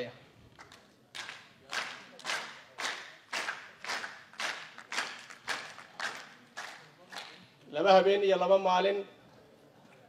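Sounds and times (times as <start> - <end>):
audience clapping in rhythm: 0.6 - 7.4.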